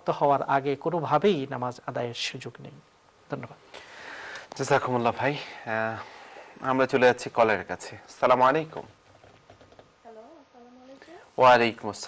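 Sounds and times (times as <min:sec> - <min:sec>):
man speaking: 0:04.6 - 0:08.9, 0:11.3 - 0:12.0.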